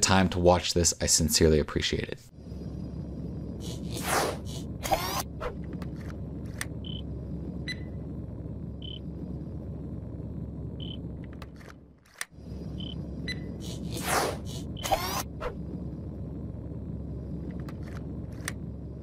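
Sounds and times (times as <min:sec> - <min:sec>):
steady low rumble: 0:00.0 - 0:19.0.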